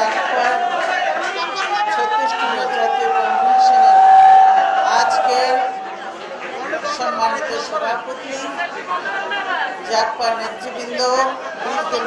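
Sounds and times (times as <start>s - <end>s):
speech into microphones: 0.0s - 4.1s, 4.8s - 5.9s, 6.5s - 12.0s.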